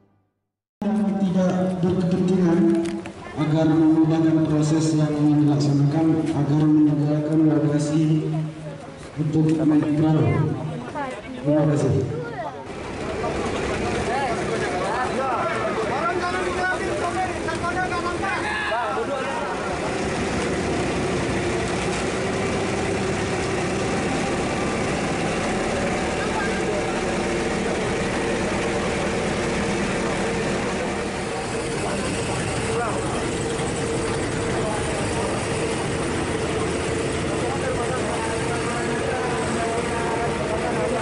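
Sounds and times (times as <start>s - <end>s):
indistinct voices: 12.2s - 41.0s
boat engine humming: 12.3s - 41.0s.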